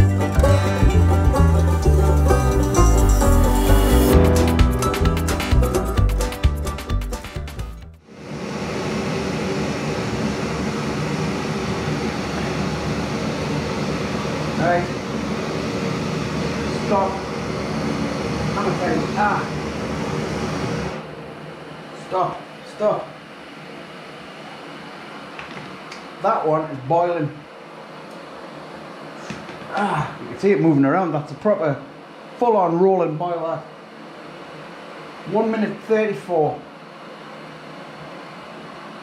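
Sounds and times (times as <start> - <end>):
camping stoves burner rush: 8.2 - 21.0.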